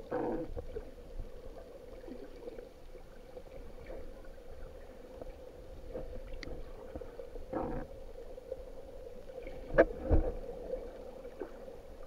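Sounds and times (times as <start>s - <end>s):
underwater low hum: 0.0s - 12.0s.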